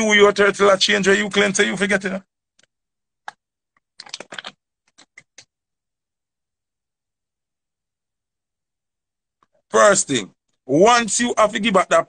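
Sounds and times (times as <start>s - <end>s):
plastic bottle clicks and crackles: 4.0s - 5.5s.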